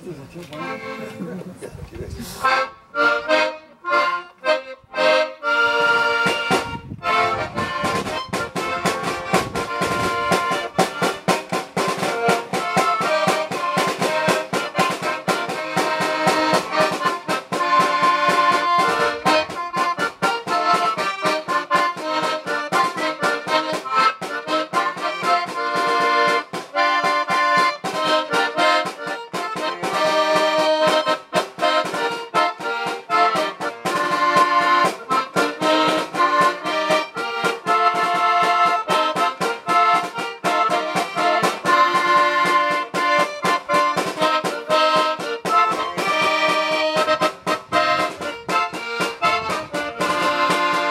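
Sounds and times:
accordion playing a lively polka: 0.0s - 1.6s, 2.2s - 50.9s
snare drum beat: 7.6s - 50.9s.

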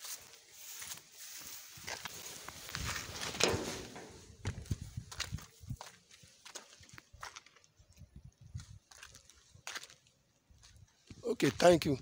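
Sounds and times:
footsteps through tall grass: 0.0s - 7.6s, 8.5s - 11.8s.

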